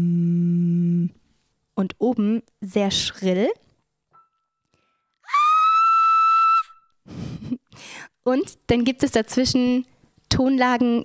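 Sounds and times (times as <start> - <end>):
faint breathing: 7.1 - 8.2.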